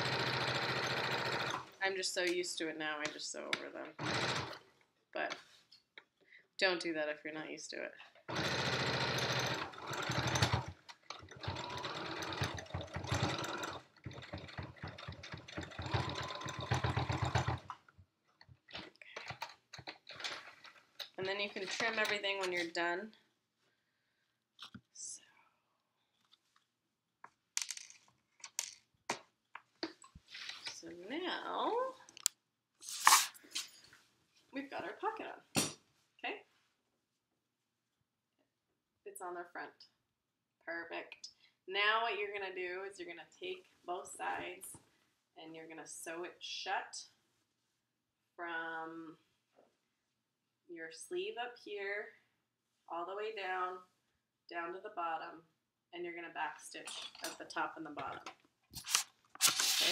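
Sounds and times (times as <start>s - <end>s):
electric sewing machine stitching: 0.0s - 1.8s, 3.9s - 4.6s, 8.3s - 17.8s
fabric crinkling rustles: 58.7s - 59.9s.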